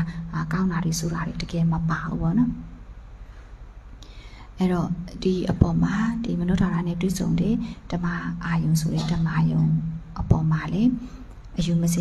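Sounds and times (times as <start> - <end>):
woman talking into microphone: 4.6 - 11.0, 11.6 - 12.0.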